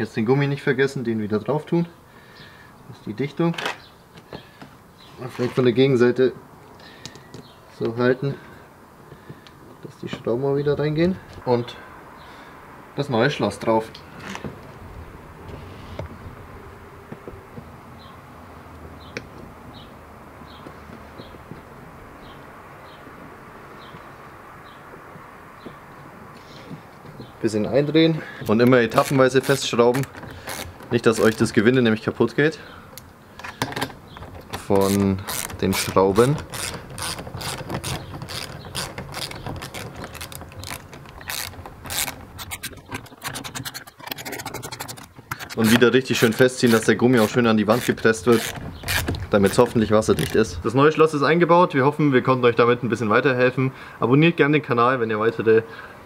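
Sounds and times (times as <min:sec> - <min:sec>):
hand ratchet clicking: 0:28.9 - 0:31.5, 0:34.5 - 0:50.5.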